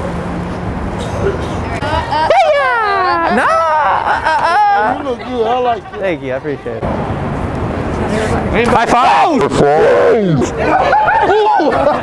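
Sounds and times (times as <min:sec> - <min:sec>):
woman screaming: 0:01.8 - 0:05.0.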